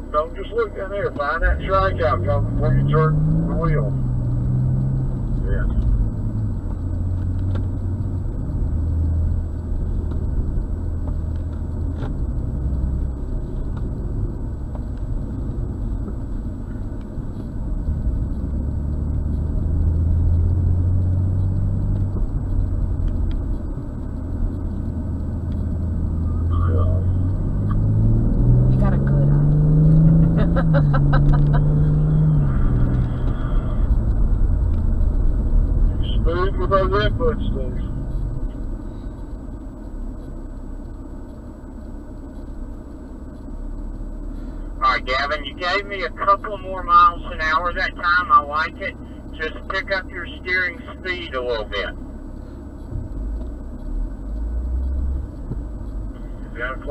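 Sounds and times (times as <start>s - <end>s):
car engine accelerating: 0.0s - 56.9s
tyre and road rumble: 0.0s - 56.9s.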